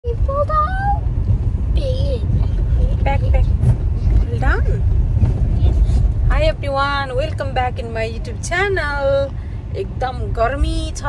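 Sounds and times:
car road rumble: 0.0 - 11.0
voices: 0.1 - 1.0.

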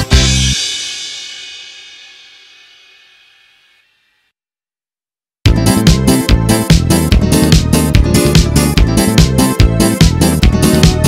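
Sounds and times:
crash cymbal ringing: 0.2 - 4.3.

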